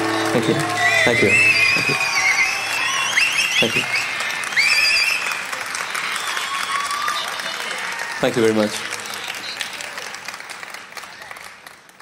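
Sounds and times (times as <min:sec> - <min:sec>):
crowd whistling: 0:00.0 - 0:08.2, 0:08.8 - 0:10.0
audience applauding: 0:00.0 - 0:12.0.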